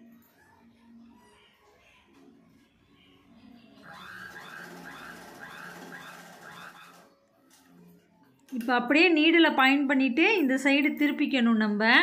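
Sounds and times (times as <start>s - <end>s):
sewing machine stitching: 3.8s - 7.1s.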